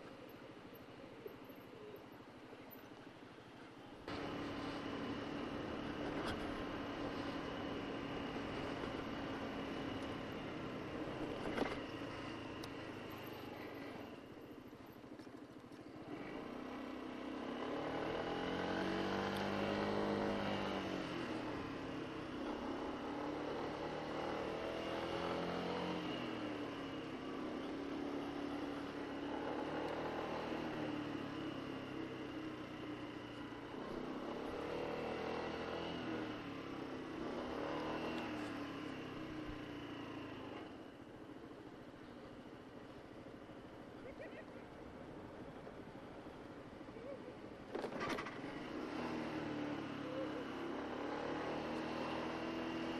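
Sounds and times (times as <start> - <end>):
wind and tyre noise: 0.0 - 52.9.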